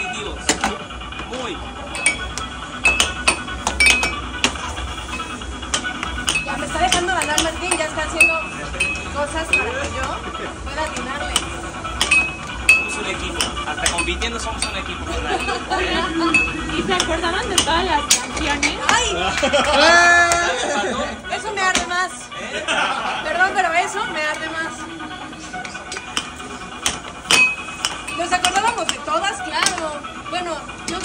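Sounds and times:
air hockey puck clacking: 0.4s - 1.3s, 1.9s - 20.5s, 21.6s - 22.0s, 25.5s - 30.0s.

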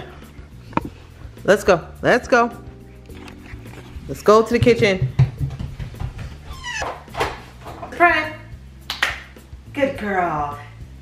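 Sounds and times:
toddler squealing: 6.5s - 6.8s.

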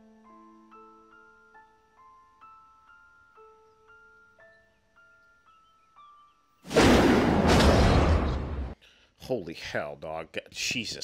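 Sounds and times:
slow glockenspiel melody: 0.0s - 6.5s
loud blast with deep rumble: 6.7s - 8.8s.

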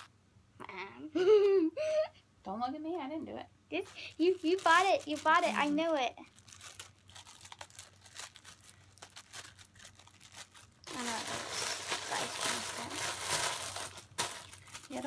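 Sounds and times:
plastic packaging crinkling: 3.8s - 15.0s.

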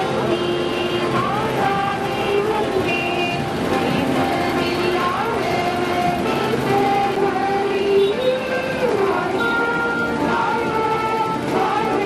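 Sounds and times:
many voices: 0.0s - 12.0s
music with held notes: 0.0s - 12.0s
vehicle engine rumble: 0.0s - 12.0s.

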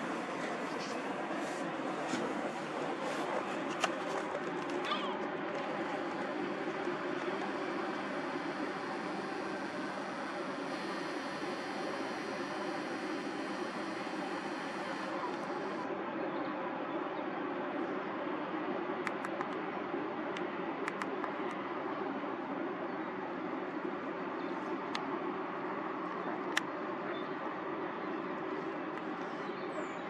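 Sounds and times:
outdoor background hiss: 0.0s - 30.0s
sharp click: 20.9s - 21.4s.

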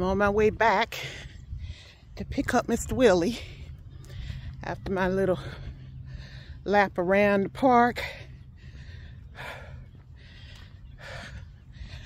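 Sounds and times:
low steady rumble: 0.0s - 12.0s
person breathing: 1.0s - 2.2s, 5.4s - 6.7s, 8.0s - 12.0s.

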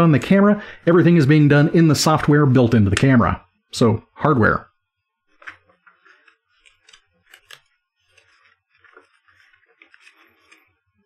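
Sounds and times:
paper pages rustling: 5.3s - 10.8s
sharp paper crackles: 5.4s - 10.7s.

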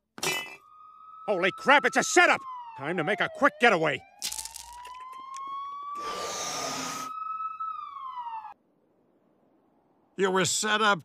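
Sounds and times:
wailing siren: 0.3s - 8.6s.

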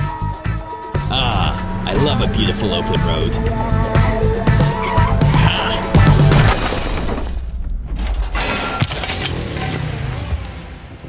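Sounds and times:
background music: 0.0s - 7.5s
chunks clattering: 1.6s - 10.0s
concrete wall smashing apart: 6.3s - 10.2s.

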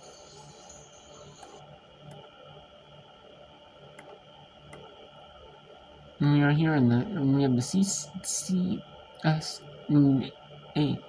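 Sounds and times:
faint whine: 0.0s - 11.0s
soft clicks: 1.4s - 2.3s, 3.9s - 4.9s.

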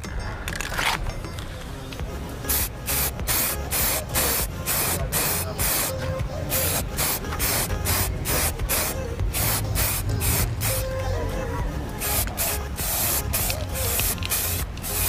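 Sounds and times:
spray paint can hissing bursts: 2.4s - 11.0s, 12.0s - 15.0s.

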